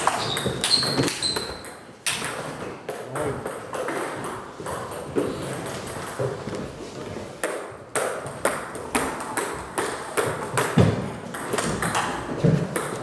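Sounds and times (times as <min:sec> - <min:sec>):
table tennis balls clicking: 0:00.0 - 0:06.4, 0:07.4 - 0:13.0.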